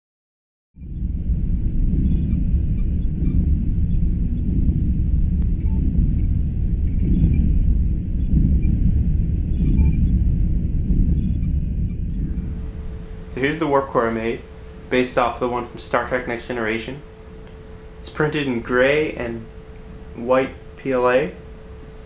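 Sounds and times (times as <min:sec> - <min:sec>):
deep rumbling engine hum: 0:00.8 - 0:22.0
faint high whines: 0:00.8 - 0:22.0.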